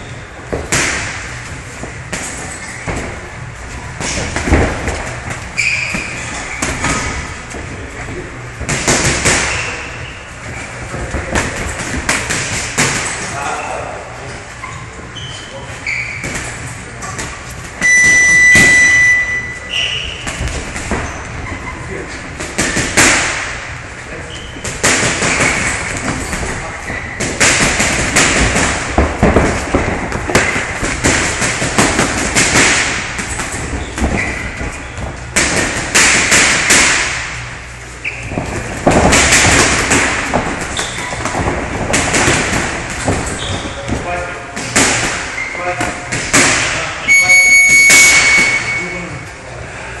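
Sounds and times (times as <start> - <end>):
gym noise with voices: 0.0 - 50.0
boxing gloves landing punches: 0.5 - 3.2, 8.6 - 9.6, 22.4 - 23.7, 24.7 - 26.6, 27.2 - 37.4, 38.3 - 44.0, 44.6 - 46.8
high electronic tone: 17.8 - 19.6
footwork thuds on canvas: 27.2 - 37.1.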